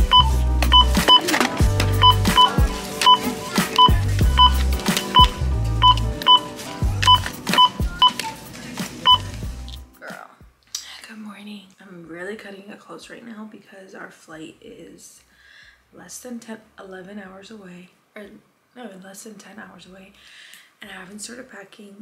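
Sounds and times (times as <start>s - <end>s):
barcode scanner beeping: 0.0s - 1.3s, 2.0s - 8.2s, 9.1s - 9.3s
music with heavy bass beat: 0.0s - 8.1s
woman talking: 10.0s - 15.3s, 16.0s - 20.2s, 20.8s - 22.0s.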